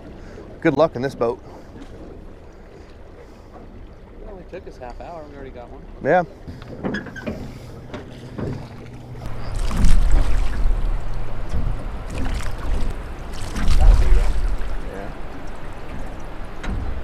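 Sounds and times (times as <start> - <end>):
oars splashing through water: 0.0 - 17.0
wind rumble on microphone: 6.5 - 17.0.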